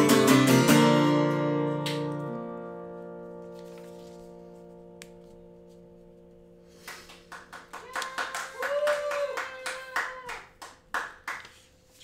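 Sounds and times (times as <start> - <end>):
hand clapping: 1.6 - 2.4, 6.8 - 12.0.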